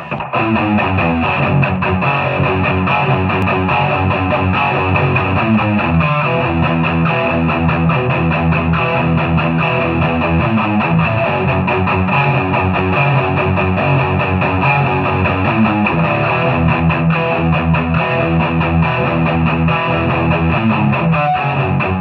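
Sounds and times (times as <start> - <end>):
overdriven electric guitar riff: 0.0 - 22.0.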